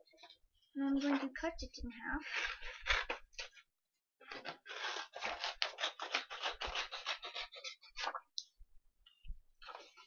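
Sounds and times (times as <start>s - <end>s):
scissors snipping paper: 4.3s - 8.2s.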